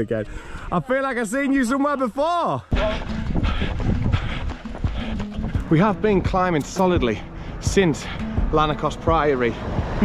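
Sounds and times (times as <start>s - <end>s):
wind on microphone: 2.8s - 5.0s
running footsteps on wet tarmac: 2.8s - 7.2s.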